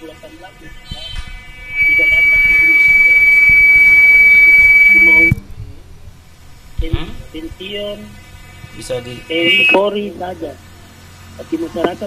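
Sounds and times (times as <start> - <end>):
high-pitched feedback whistle: 0.6 - 5.4, 8.8 - 10.1.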